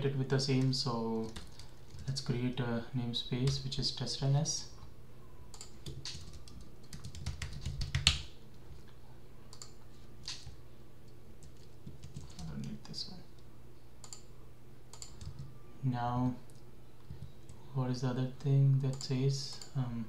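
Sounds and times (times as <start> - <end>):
steady low hum: 0.0 - 20.0
keyboard typing: 0.5 - 2.2, 5.5 - 8.3, 11.4 - 12.8, 14.9 - 15.5.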